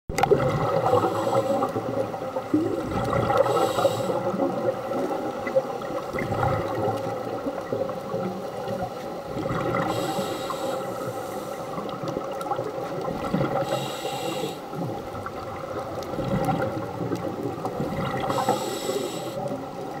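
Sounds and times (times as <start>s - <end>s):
underwater bubbling: 0.1s - 20.0s
breath hissing through regulator: 0.8s - 1.9s, 3.4s - 4.4s, 9.8s - 11.9s, 13.6s - 14.9s, 18.2s - 19.6s.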